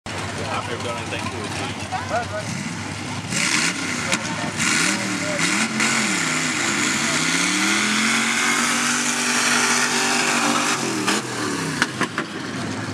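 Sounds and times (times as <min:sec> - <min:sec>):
truck engine revving: 0:00.1 - 0:12.9.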